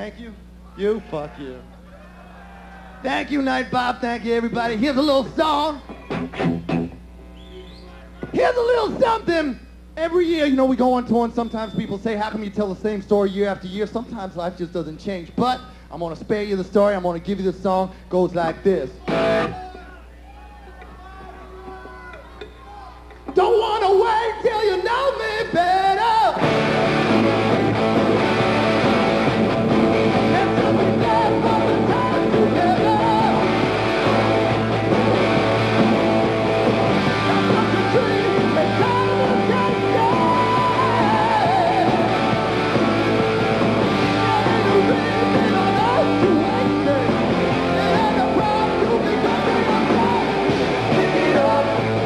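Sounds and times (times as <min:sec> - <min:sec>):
hard rock band playing: 0:06.0 - 0:07.0, 0:19.1 - 0:19.6, 0:26.4 - 0:52.0
person singing: 0:30.2 - 0:33.6, 0:37.2 - 0:42.5, 0:44.1 - 0:52.0.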